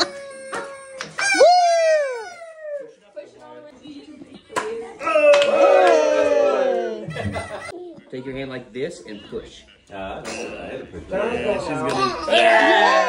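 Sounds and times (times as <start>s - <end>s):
people whooping and cheering: 0.6s - 3.0s, 5.0s - 7.1s, 12.3s - 13.0s.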